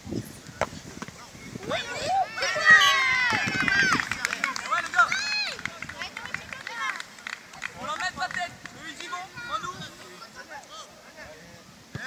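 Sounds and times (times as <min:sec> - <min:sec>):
children shouting and cheering: 0:01.6 - 0:07.1.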